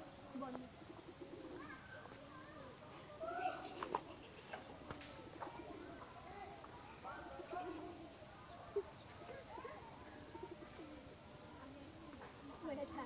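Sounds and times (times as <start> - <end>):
faint bird calls: 0.0 - 12.6
distant voices: 0.0 - 13.0.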